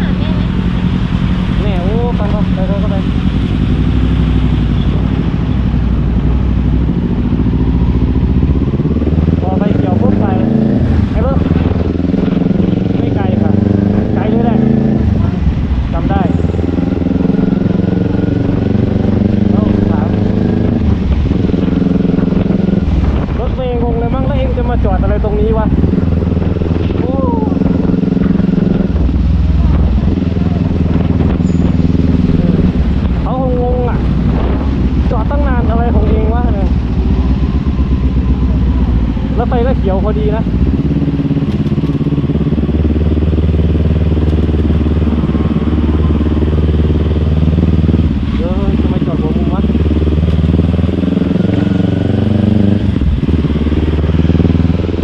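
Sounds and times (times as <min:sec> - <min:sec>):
motorcycle engine accelerating: 0:00.0 - 0:55.0.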